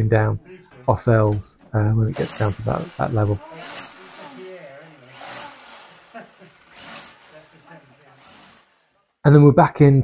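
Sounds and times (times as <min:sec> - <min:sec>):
tools scraping on stone rubble: 0:02.1 - 0:09.0.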